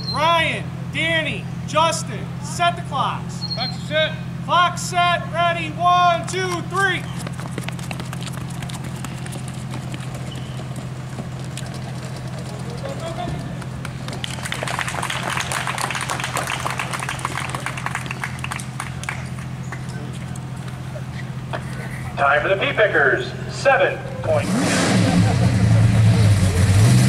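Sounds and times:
steady low hum: 0.0 - 26.8
running feet clatter: 6.2 - 21.0.

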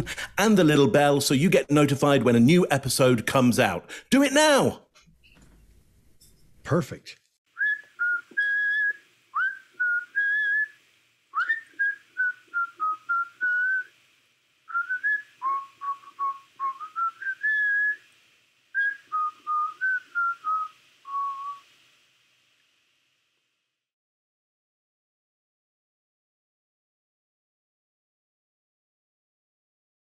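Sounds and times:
person whistling a melody: 7.6 - 10.7, 11.4 - 13.9, 14.7 - 18.0.

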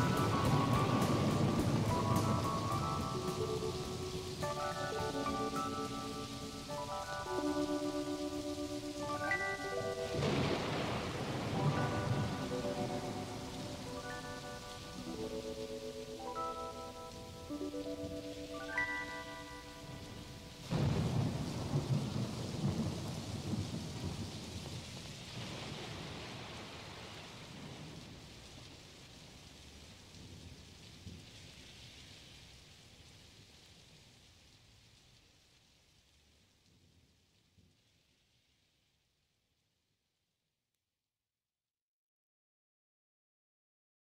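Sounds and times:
thunderclap: 0.0 - 15.6, 18.8 - 28.5
held keyboard notes: 0.0 - 20.7
steady rain: 0.0 - 39.7.

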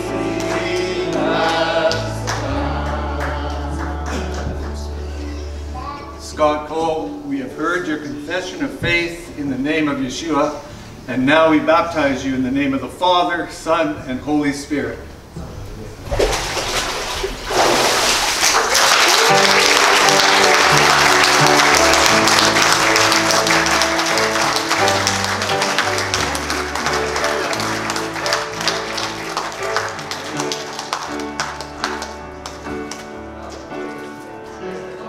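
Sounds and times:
congregation applauding: 0.0 - 5.2, 17.6 - 33.7.

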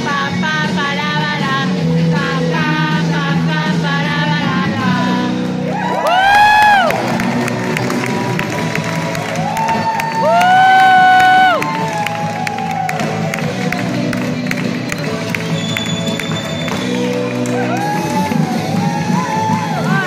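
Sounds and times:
country dance music: 0.0 - 20.0
person whooping: 5.7 - 7.0, 9.4 - 13.0.

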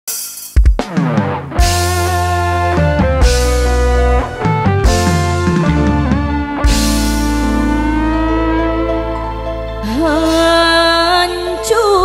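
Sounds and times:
drum hits: 0.1 - 7.9
sliding lead melody: 0.8 - 12.0
deep steady bass: 1.5 - 10.4.

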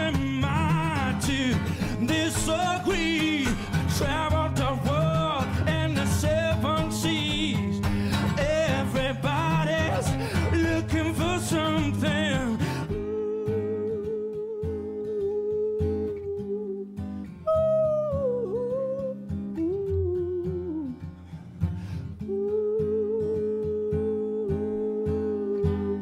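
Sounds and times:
strummed acoustic guitar: 0.0 - 26.0.

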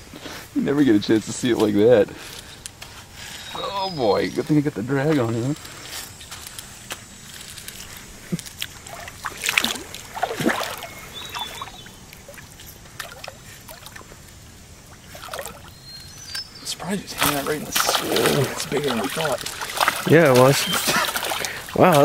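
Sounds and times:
water sloshing and splashing: 7.2 - 22.0.

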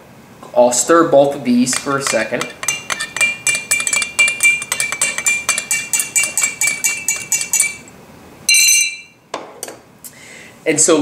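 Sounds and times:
stirrers clinking against glasses: 1.6 - 7.9.

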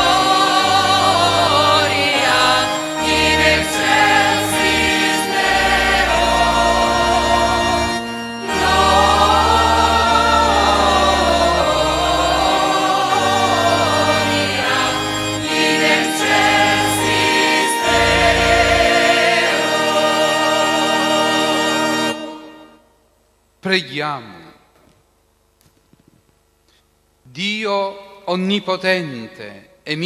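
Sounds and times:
choir singing in chorus: 0.0 - 22.8
long held bass notes: 0.0 - 22.8.

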